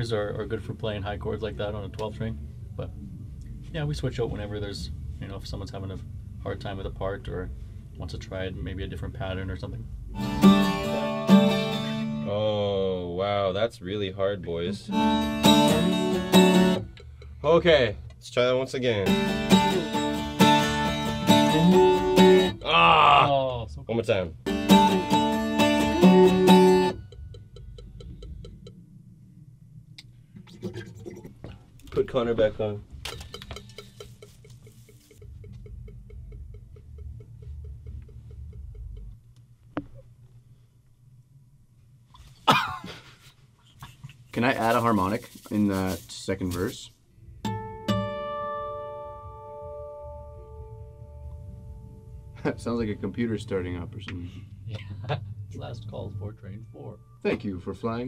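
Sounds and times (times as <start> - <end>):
low rumble: 0.0 - 11.0, 26.2 - 33.0, 35.2 - 41.7, 49.2 - 58.0
acoustic guitar chords ringing: 10.1 - 12.5, 14.9 - 17.0, 19.0 - 22.7, 24.4 - 29.0, 47.4 - 58.0
metronome ticking: 14.9 - 17.4, 24.5 - 29.1, 33.2 - 39.2.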